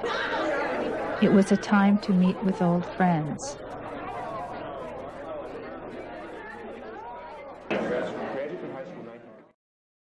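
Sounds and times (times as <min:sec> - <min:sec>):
chatter of many people: 0:00.0 - 0:09.6.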